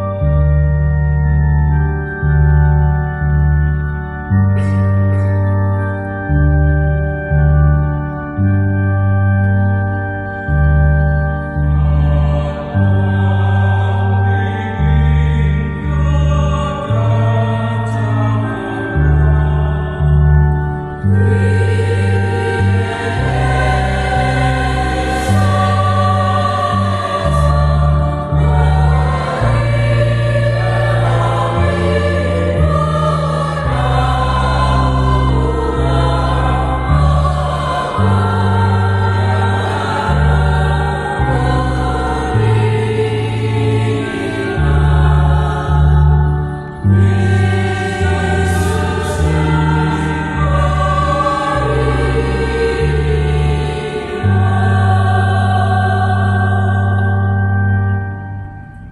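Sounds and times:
mixed choir singing: 0:00.0 - 0:00.8, 0:11.0 - 0:57.9
electronic keyboard chords: 0:00.0 - 0:58.9.

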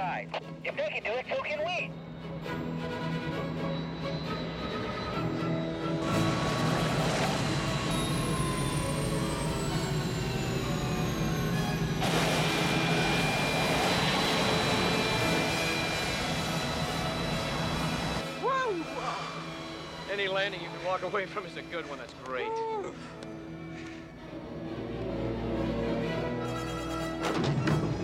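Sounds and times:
film score: 0:00.0 - 0:28.0
engine and runway noise rush: 0:00.3 - 0:28.0
jet engine whine: 0:00.3 - 0:28.0.

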